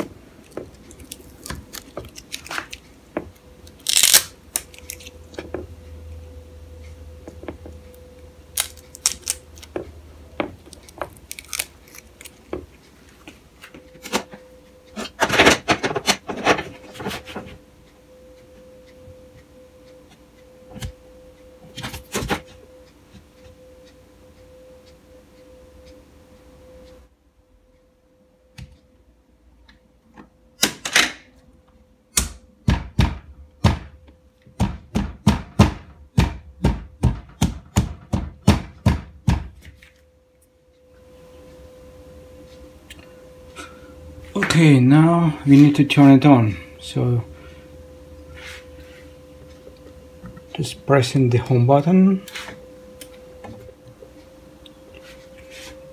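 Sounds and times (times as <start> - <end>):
faint steady hum: 0.0 - 55.9.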